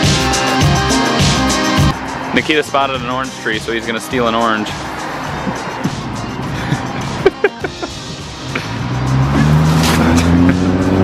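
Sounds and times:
background music: 0.0s - 11.0s
vehicle engine accelerating: 1.7s - 3.4s, 4.7s - 11.0s.

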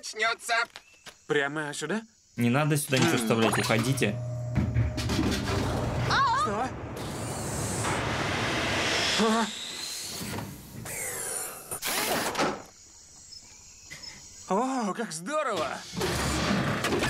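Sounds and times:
electronic warbles: 3.0s - 5.1s
noisy burst: 4.7s - 11.2s
whirring mechanical noise: 7.0s - 12.6s.

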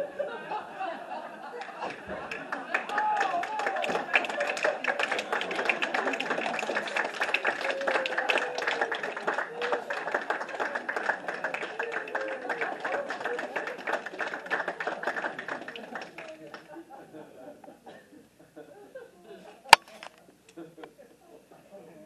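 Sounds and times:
audience clapping: 1.5s - 16.7s.

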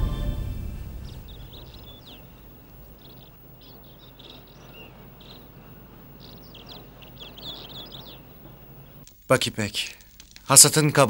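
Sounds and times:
faint low hum: 0.0s - 9.0s
birds chirping: 0.0s - 9.1s.

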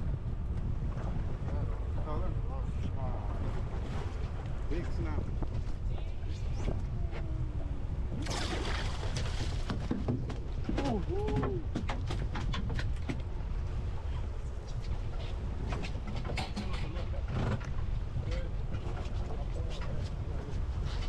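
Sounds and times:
wind and sea rumble: 0.0s - 21.0s.

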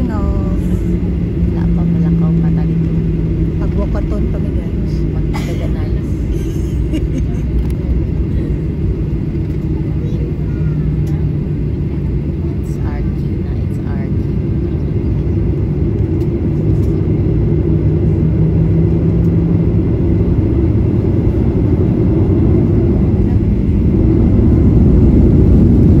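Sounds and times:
jet engines and airflow rumble: 0.0s - 26.0s
low hum: 0.0s - 26.0s.

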